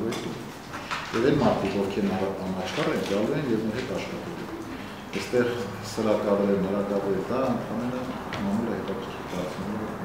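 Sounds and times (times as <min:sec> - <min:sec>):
man talking: 0:01.1 - 0:10.0.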